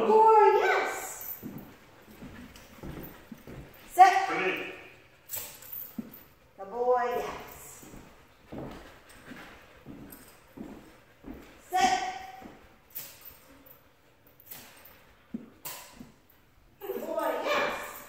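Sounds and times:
footsteps on hardwood floor: 1.2s - 4.1s, 5.8s - 6.3s, 7.1s - 12.8s
dog claws tapping on floor: 7.2s - 18.0s.

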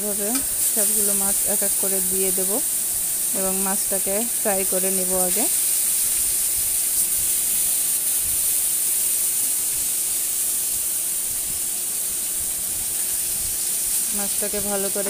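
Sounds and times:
fish sizzling in hot oil: 0.0s - 15.0s.

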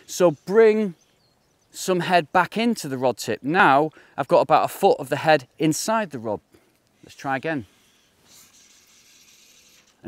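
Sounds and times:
fly line hissing through air: 7.0s - 10.0s.

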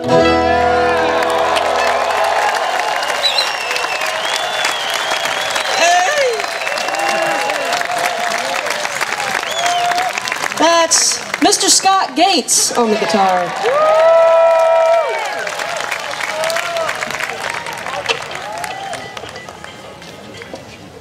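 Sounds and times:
audience applauding and cheering: 0.0s - 12.1s, 12.8s - 20.0s
whistles: 3.0s - 7.4s, 9.3s - 10.1s
people shouting: 5.6s - 8.7s.

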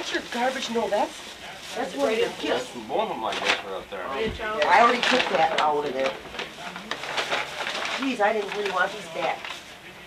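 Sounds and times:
faint voices: 0.0s - 10.0s
plastic bag rustling: 0.0s - 10.0s.

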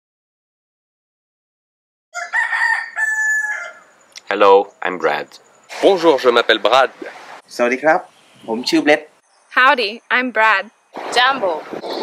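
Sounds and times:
rooster crowing: 2.1s - 4.1s.

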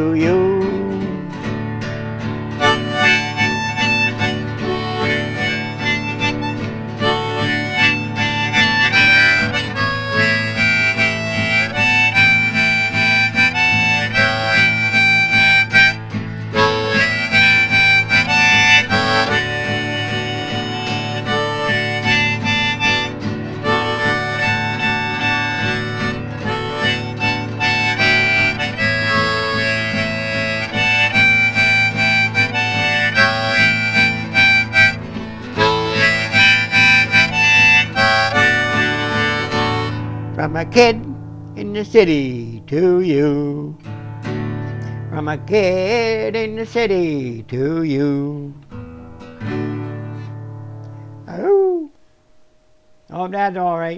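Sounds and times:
strummed acoustic guitar: 0.0s - 51.5s
harmonica playing melody: 0.1s - 51.8s.

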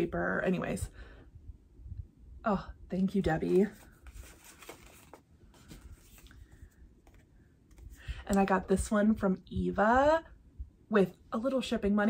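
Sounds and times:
paper cards being handled: 3.3s - 8.0s.

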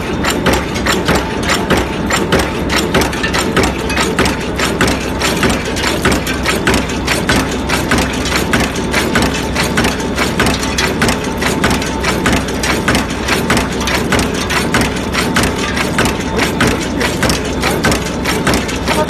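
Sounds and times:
forging machine clattering: 0.0s - 19.0s
low hum of machine drive: 0.0s - 19.0s.

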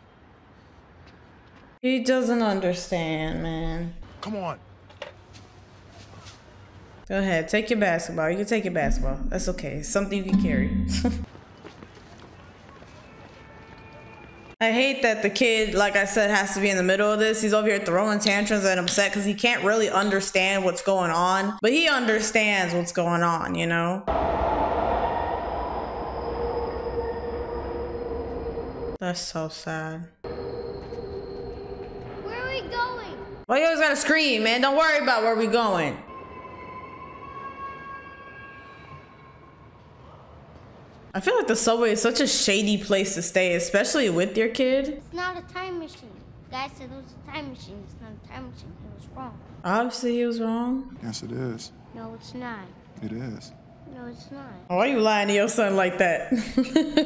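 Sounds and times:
low rumble of train: 24.1s - 29.0s, 30.2s - 33.5s
subway train high whine: 24.1s - 29.0s, 30.2s - 33.4s
faint film soundtrack: 30.2s - 49.6s.

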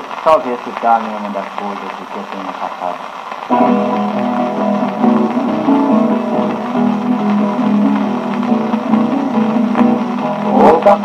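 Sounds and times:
plucked guitars playing: 3.5s - 11.0s.

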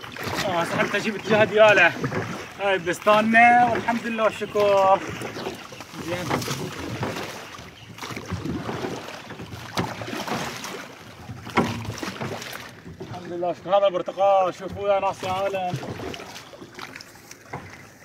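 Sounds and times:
oars splashing water: 0.0s - 18.0s
sharp wooden knocks: 8.0s - 10.6s, 11.3s - 13.3s.

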